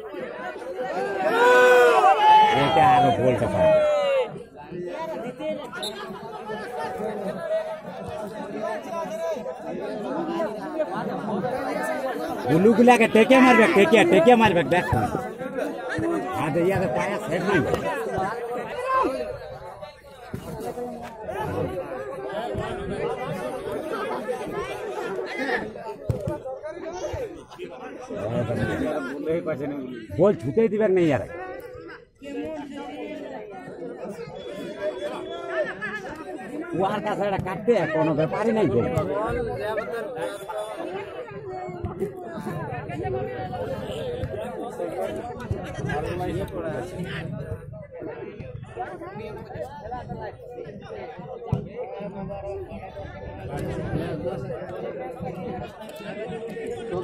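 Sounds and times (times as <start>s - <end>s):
spectators chattering: 0.0s - 57.0s.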